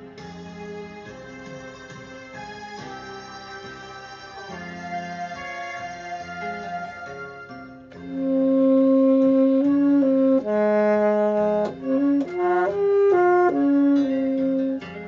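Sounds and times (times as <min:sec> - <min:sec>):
backing accompaniment: 0:00.0 - 0:15.0
tenor saxophone melody: 0:08.0 - 0:15.0.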